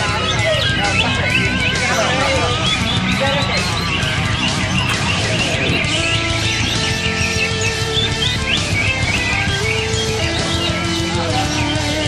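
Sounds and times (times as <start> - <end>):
background music with held notes: 0.0 - 12.0
birds chirping and singing: 0.0 - 12.0.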